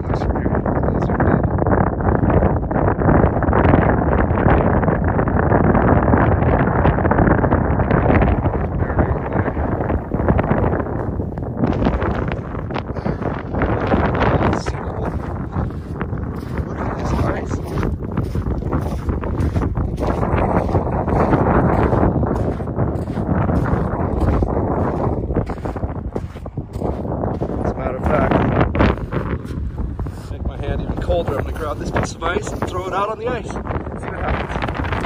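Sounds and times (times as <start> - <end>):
strong wind buffeting microphone: 0.0 - 35.0.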